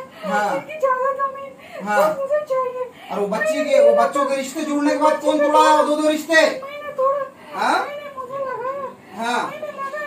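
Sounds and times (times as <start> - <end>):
woman wailing: 3.3 - 4.4.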